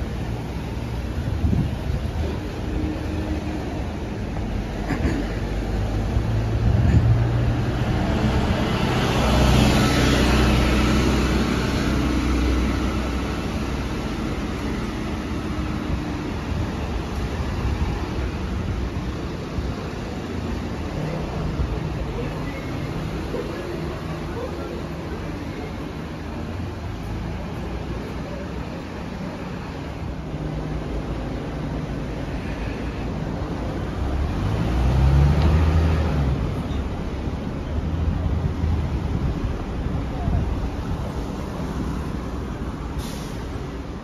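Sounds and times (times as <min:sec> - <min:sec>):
vehicles driving past: 0:00.0 - 0:44.0.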